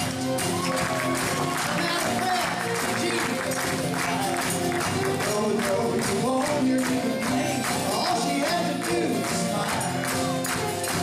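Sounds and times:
audience hand claps: 0.0s - 11.0s
cowbells: 0.0s - 11.0s
folk band with group singing: 0.0s - 11.0s.

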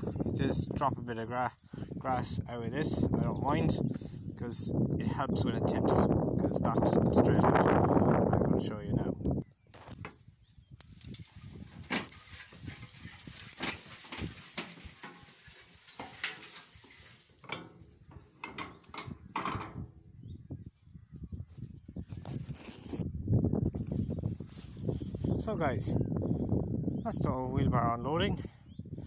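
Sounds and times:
dry grass rustling and sliding: 9.8s - 18.8s, 23.9s - 25.2s
wheelbarrow handling knocks: 11.6s - 20.0s.

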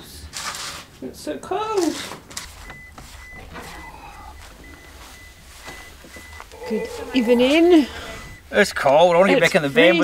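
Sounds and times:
van warning chime beeping: 2.2s - 10.0s.

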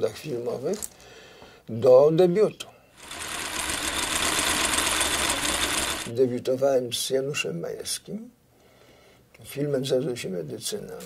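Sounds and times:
film projector clattering: 3.0s - 6.1s.

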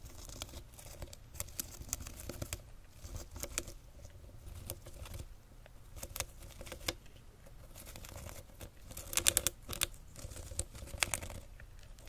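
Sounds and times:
hamster scratching in paper bedding: 0.0s - 12.0s.

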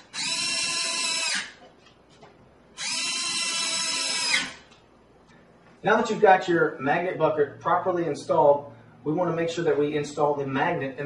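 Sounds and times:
cordless drill whining: 0.0s - 1.6s, 2.8s - 4.6s.

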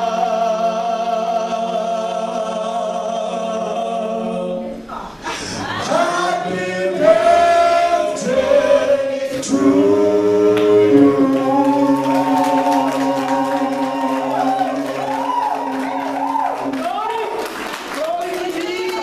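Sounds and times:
congregation singing: 0.0s - 19.0s.

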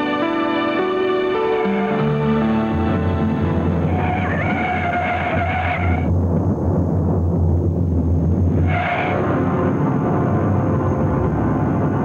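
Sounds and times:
steady low rumble: 2.0s - 12.0s
car tyres screeching: 3.5s - 6.1s, 8.5s - 9.4s.

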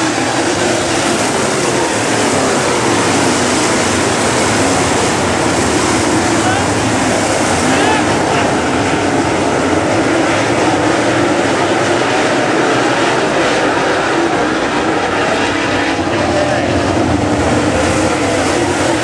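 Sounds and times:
race car engines droning: 0.0s - 19.0s.

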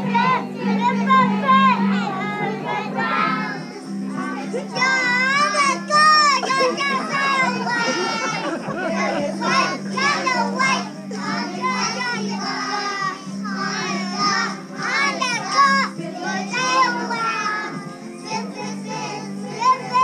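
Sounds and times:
children chattering and calling out: 0.0s - 20.0s.

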